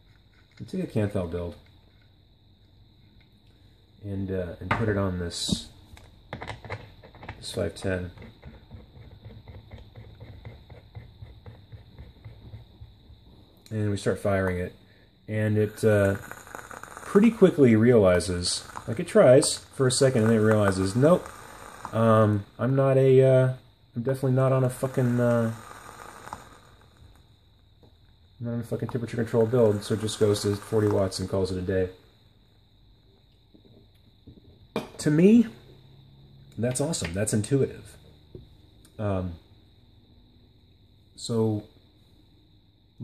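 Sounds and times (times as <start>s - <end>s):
metal threads clicking and scraping: 15.8s - 22.4s.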